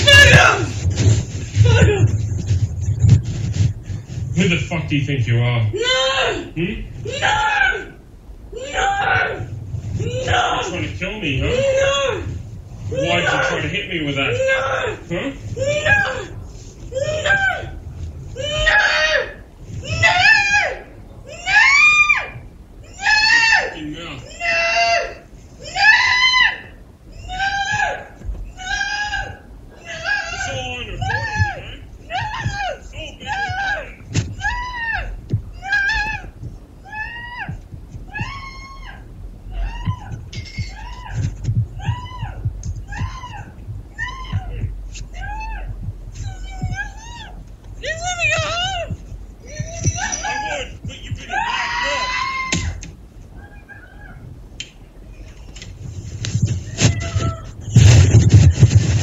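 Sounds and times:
woman screaming: 0:07.1 - 0:10.7, 0:16.9 - 0:17.8, 0:18.4 - 0:41.2, 0:41.8 - 0:50.7, 0:51.3 - 0:52.8.

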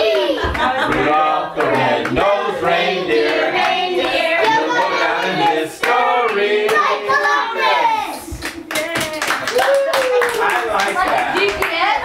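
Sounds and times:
people clapping: 0:00.0 - 0:12.0.

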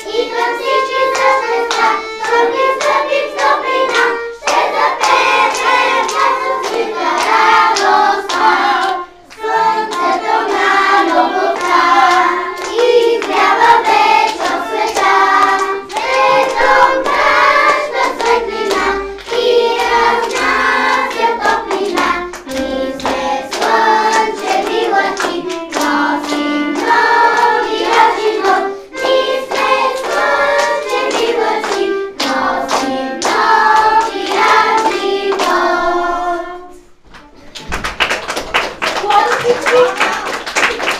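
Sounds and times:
children singing in unison: 0:00.0 - 0:37.0
violin: 0:00.0 - 0:38.0.

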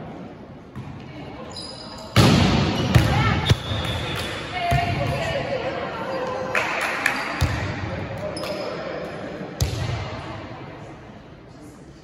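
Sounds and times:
players' voices echoing: 0:00.0 - 0:12.0
volleyball strike: 0:02.2 - 0:05.2.

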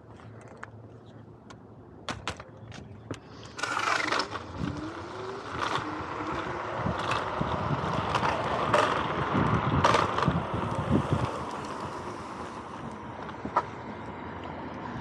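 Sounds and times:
scooter tyre and road noise: 0:00.0 - 0:15.0
scooter knocks and rattles: 0:02.0 - 0:04.9, 0:05.6 - 0:11.4
wind on microphone: 0:02.7 - 0:13.6
electric motor whine: 0:03.5 - 0:13.0.

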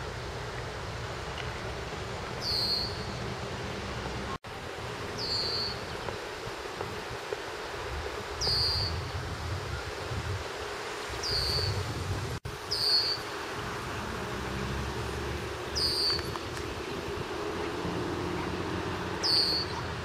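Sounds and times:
bird short high call: 0:02.4 - 0:03.1, 0:19.2 - 0:19.9.

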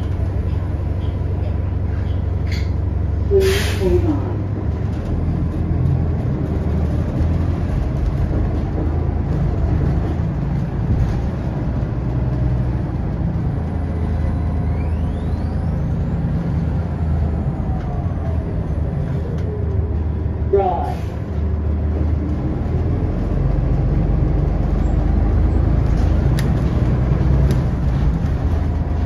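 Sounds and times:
bus drivetrain drone: 0:00.0 - 0:29.0.

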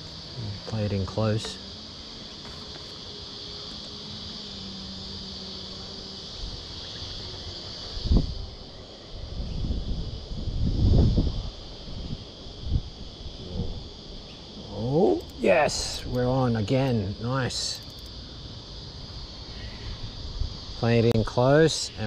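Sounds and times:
insects droning: 0:00.0 - 0:22.0
wind gusts on microphone: 0:07.8 - 0:16.3.

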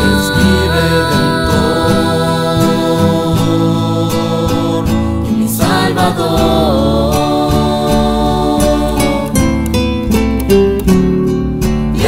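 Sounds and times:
classical guitars ensemble playing: 0:00.0 - 0:12.0.

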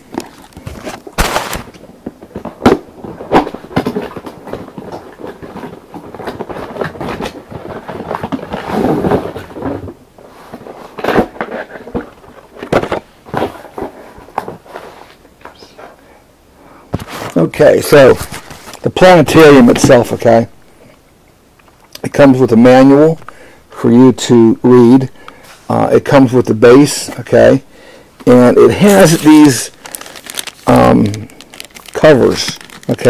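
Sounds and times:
cardboard scraping: 0:00.0 - 0:15.2, 0:17.0 - 0:20.3, 0:28.3 - 0:33.0.

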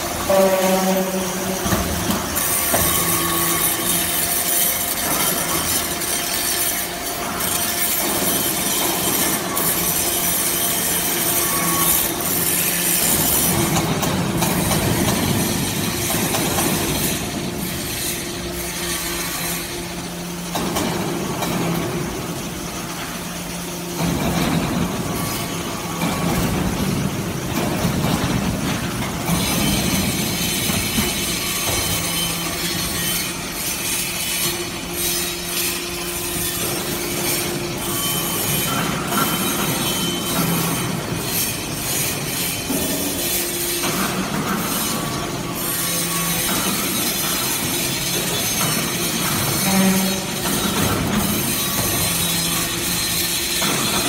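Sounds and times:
hydraulic pump hum: 0:00.0 - 0:54.0.

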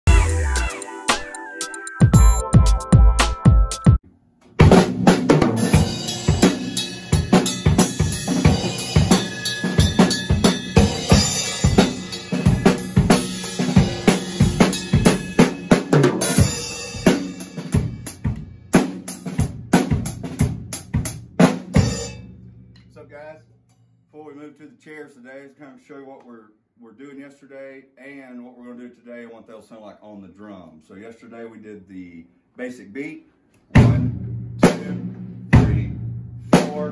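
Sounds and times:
drum kit playing: 0:00.0 - 0:23.4, 0:33.7 - 0:36.9.

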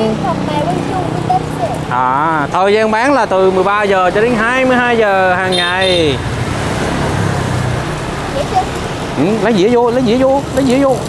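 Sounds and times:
gas burner rumble: 0:00.2 - 0:11.0.

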